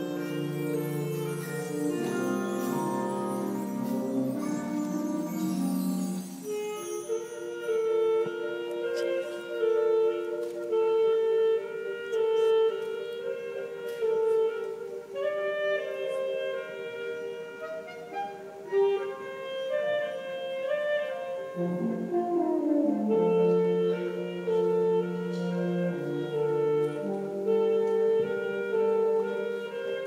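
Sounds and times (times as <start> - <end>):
saxophone slow melody: 0.0 - 30.0.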